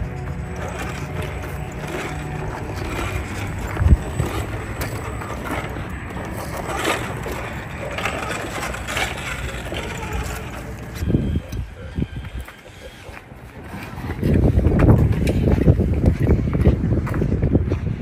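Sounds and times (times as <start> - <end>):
tyres scrabbling on rock: 0.0 - 11.2
electric motor running under load: 0.0 - 12.6.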